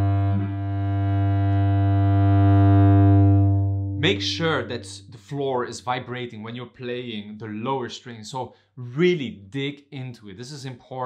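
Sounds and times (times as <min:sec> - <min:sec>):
cello bowed low note: 0:00.0 - 0:05.4.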